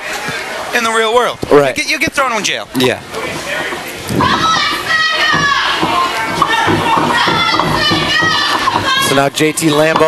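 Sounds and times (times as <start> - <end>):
audience voices: 2.3 - 10.0
children shouting and yelling: 4.1 - 9.6.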